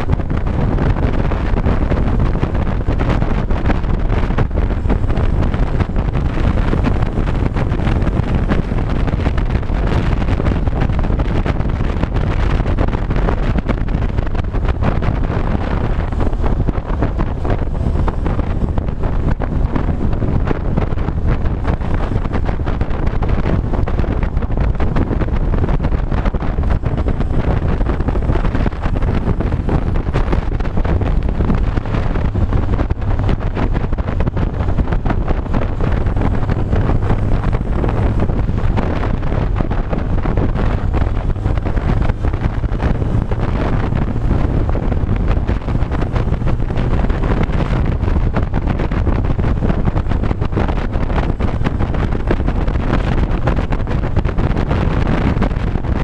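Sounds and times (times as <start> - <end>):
motorcycle engine running: 0.0 - 56.0
wind rushing over microphone: 0.0 - 56.0.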